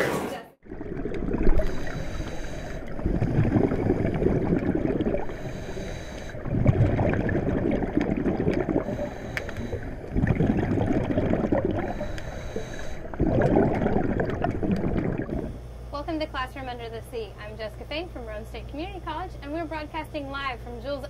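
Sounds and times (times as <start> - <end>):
underwater bubbling and gurgling: 0.6 - 15.6.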